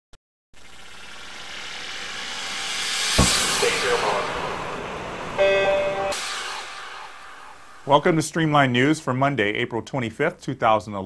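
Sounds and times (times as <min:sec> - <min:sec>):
whooshing swell: 0:01.0 - 0:08.2
bright held chord: 0:03.2 - 0:07.3.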